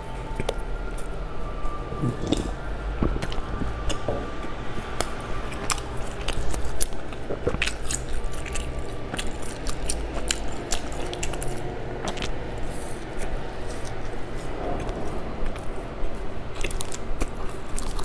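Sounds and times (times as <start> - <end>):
chewing crunchy pastry: 0.0 - 18.0.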